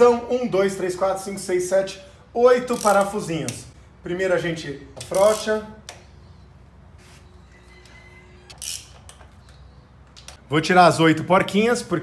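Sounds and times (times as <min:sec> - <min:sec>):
socket wrench loosening nuts: 0:02.6 - 0:03.6, 0:05.0 - 0:05.6, 0:08.5 - 0:09.5.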